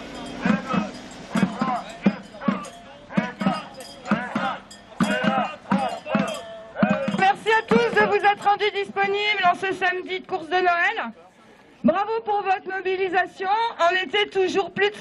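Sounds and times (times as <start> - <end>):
banging on metal pots: 0.2 - 8.6
group chanting: 0.4 - 7.2.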